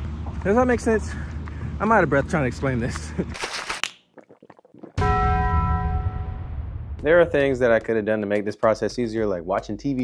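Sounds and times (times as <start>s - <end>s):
bell-like chime ringing: 5.0s - 6.8s.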